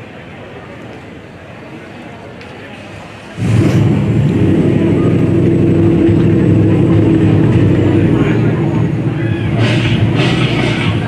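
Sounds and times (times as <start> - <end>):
car engine running: 3.4 - 11.0.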